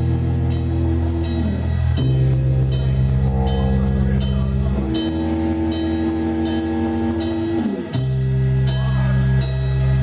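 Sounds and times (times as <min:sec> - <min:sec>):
sustained electric guitar chord: 0:00.3 - 0:09.0.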